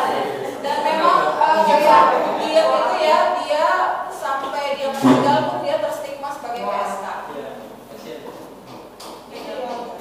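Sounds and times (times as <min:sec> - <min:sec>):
woman speaking: 0:00.0 - 0:07.3.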